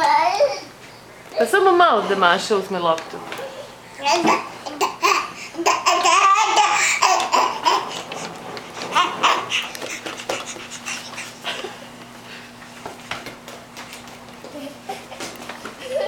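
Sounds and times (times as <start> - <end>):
baby babbling: 4.0 - 7.9.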